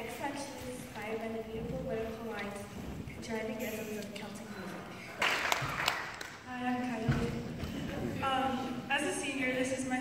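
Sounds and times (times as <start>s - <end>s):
woman speaking over loudspeakers: 0.0s - 5.0s, 6.5s - 10.0s.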